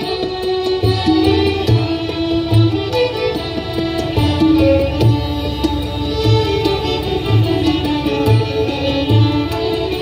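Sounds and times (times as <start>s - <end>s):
tabla drum strokes: 0.0s - 10.0s
violins playing a melody: 0.0s - 10.0s.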